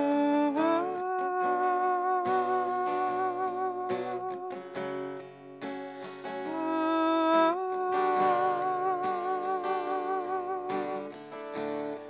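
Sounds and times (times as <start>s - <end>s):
woman singing: 0.0s - 5.4s, 6.3s - 12.0s
plucked acoustic guitar: 0.0s - 12.0s.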